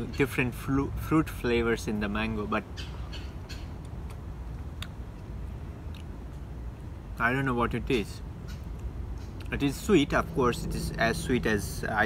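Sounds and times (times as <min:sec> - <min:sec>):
low background rumble: 0:00.0 - 0:12.0
mouth chewing fruit: 0:03.8 - 0:05.3.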